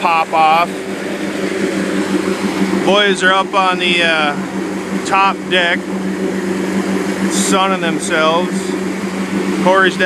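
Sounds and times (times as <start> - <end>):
boat motor droning: 0.0 - 10.0
water rushing along hull: 0.0 - 10.0.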